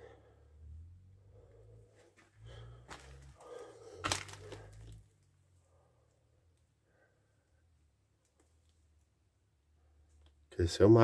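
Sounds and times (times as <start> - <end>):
debris cracking and crunching: 2.9 - 5.0.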